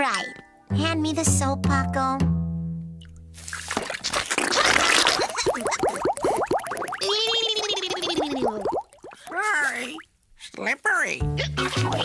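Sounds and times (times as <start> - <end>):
low bass notes: 0.7 - 3.4
cartoon music: 11.3 - 12.0.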